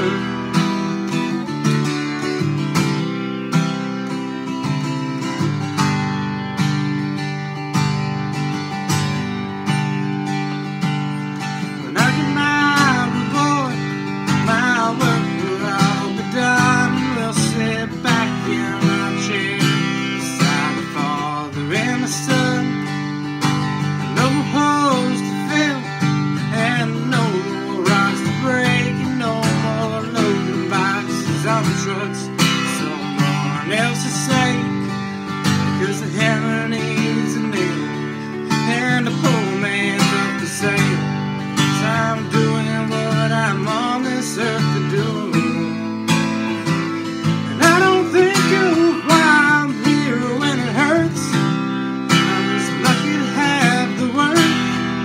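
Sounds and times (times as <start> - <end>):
acoustic guitar strumming chords: 0.0 - 55.0
bending lead guitar melody: 0.0 - 55.0.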